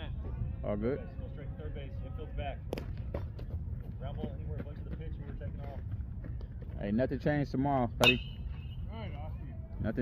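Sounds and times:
metal bat striking ball: 0:08.0 - 0:08.4.

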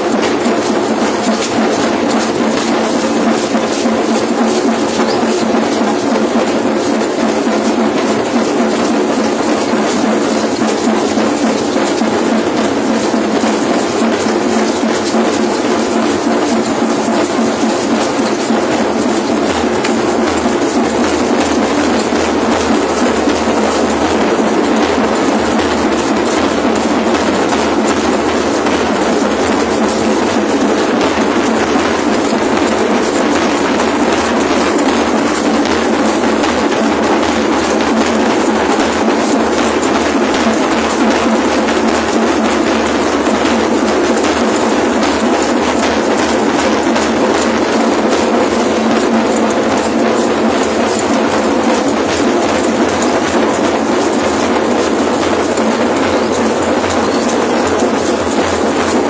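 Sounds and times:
drumming and rattling: 0:00.0 - 0:59.0.

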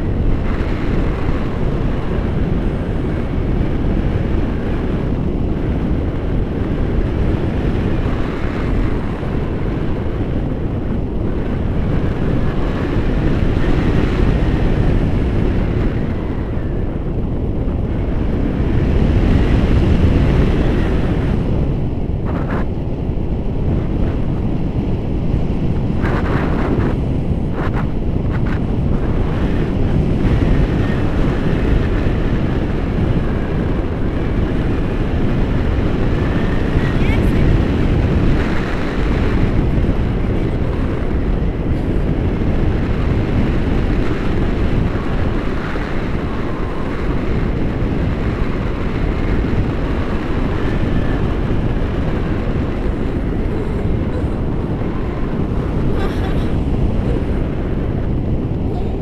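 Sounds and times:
wind buffeting microphone: 0:00.0 - 0:59.0.

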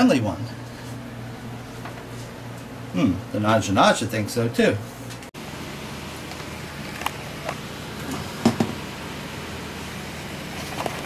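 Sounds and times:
ventilation hum: 0:00.0 - 0:11.0.

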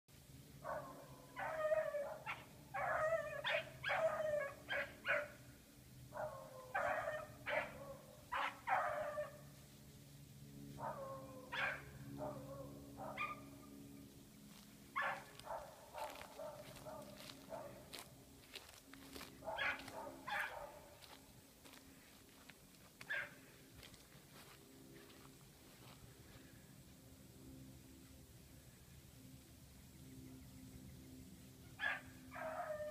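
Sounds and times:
dogs baying: 0:00.7 - 0:05.4, 0:06.2 - 0:09.4, 0:10.8 - 0:13.8, 0:15.0 - 0:18.0, 0:19.1 - 0:21.2.

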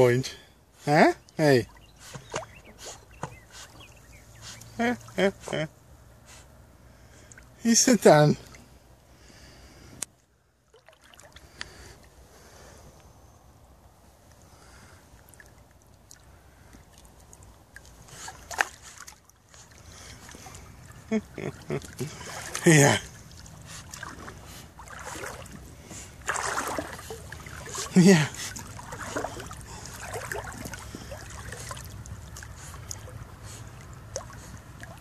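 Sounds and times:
dog paddling in water: 0:01.7 - 0:05.6, 0:15.3 - 0:35.0
loud splashing rush: 0:22.0 - 0:35.0.

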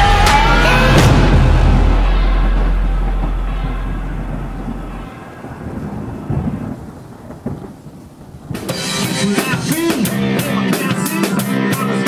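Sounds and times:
drum-led music: 0:00.0 - 0:05.2, 0:08.5 - 0:12.0
steady low bass tone: 0:00.0 - 0:06.2
deep thunder-like rumble: 0:00.0 - 0:10.7.

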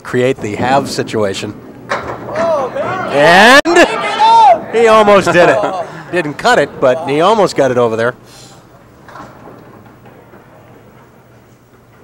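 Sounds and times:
low murmur of room noise: 0:00.0 - 0:12.0.

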